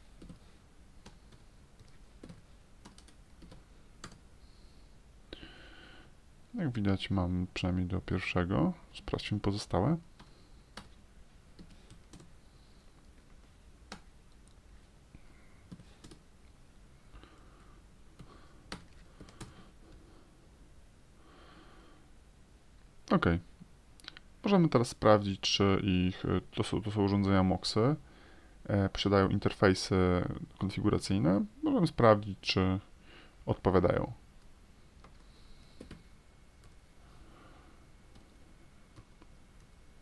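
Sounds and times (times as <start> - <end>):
faint keyboard keystrokes: 35.0 - 36.8.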